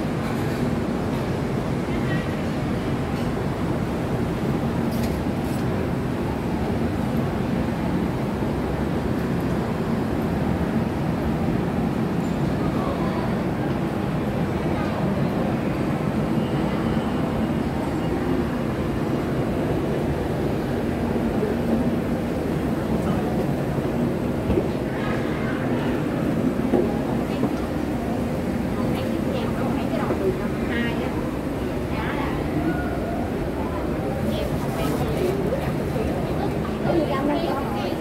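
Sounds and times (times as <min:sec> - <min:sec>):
murmur of distant voices: 0:00.0 - 0:38.0.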